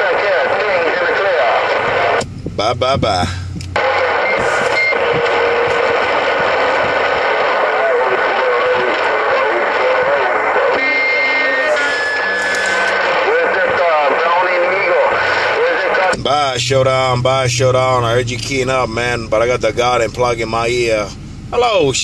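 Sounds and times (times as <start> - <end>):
radio band noise hiss: 0.0 - 21.2
garbled radio voices: 0.0 - 22.0.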